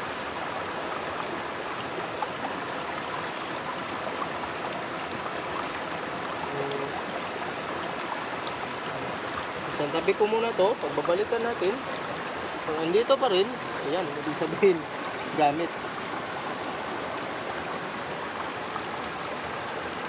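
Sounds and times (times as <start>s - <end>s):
stream running over rocks: 0.0s - 20.0s.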